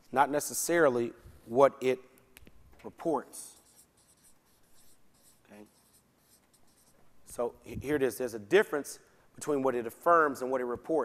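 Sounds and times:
faint scratching of writing: 0:03.4 - 0:07.6.

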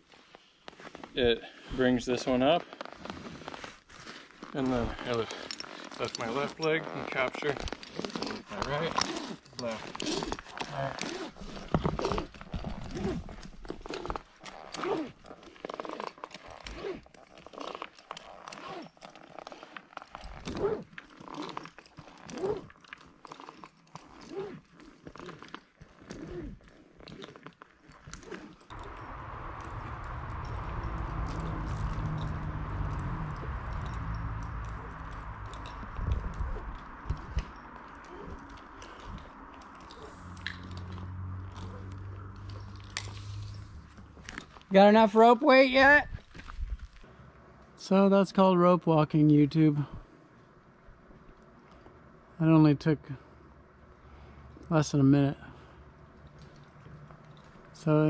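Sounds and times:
low hum: 0:28.7 - 0:44.8.

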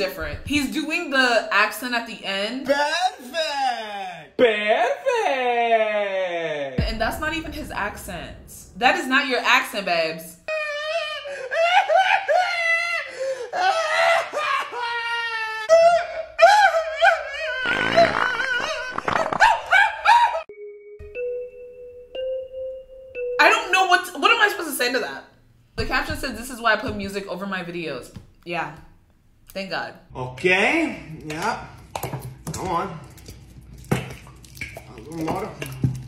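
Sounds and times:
man speaking: 0:02.6 - 0:06.8.

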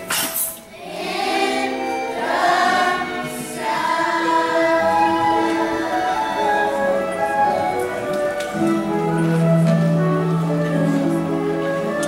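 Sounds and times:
children's chorus singing: 0:00.7 - 0:08.1.

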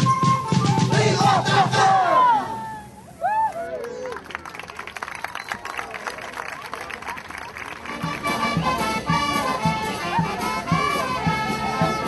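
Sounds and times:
drum-led band music: 0:00.0 - 0:02.0, 0:07.8 - 0:12.0
group shouting and whooping: 0:01.8 - 0:04.0.

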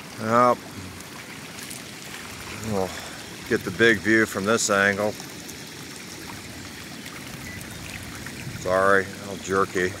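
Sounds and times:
floodwater rushing: 0:00.0 - 0:10.0.

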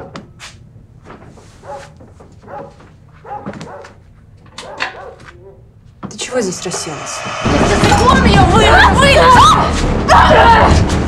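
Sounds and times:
dog barking: 0:01.6 - 0:05.7.

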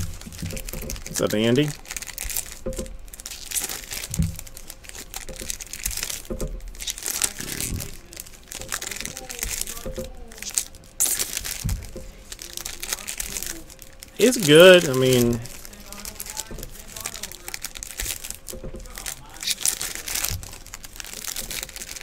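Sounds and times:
card pack wrappers crinkling and tearing: 0:00.0 - 0:22.0.

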